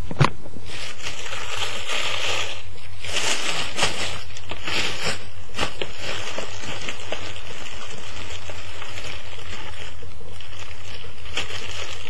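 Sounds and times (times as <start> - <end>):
paper and plastic rustling: 0.1 - 12.0.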